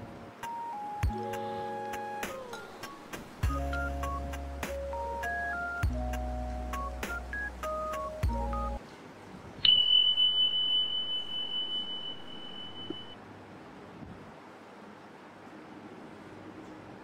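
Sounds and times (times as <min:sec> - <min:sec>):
plucked notes over bass line: 0:03.4 - 0:08.8
high ringing tone: 0:09.6 - 0:13.2.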